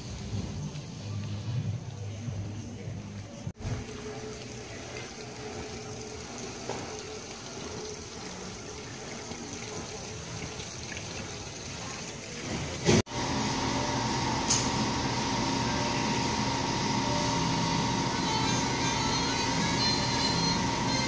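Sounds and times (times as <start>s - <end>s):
fountain water splashing: 3.6s - 12.8s.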